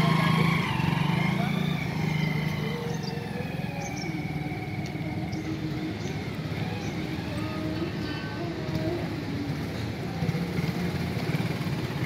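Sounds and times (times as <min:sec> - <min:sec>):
motorcycle engine running: 0:00.0 - 0:04.6, 0:08.5 - 0:12.0.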